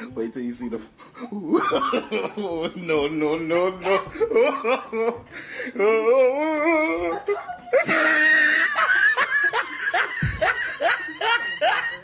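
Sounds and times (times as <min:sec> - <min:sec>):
young women laughing: 0:01.4 - 0:12.0
dull low thump: 0:10.2 - 0:10.4.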